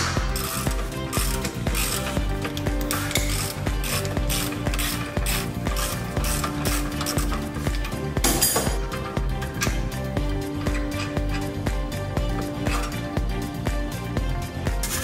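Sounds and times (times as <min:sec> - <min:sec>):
hand ratchet clicking: 0:00.0 - 0:11.6
background music with steady beat: 0:00.0 - 0:15.0.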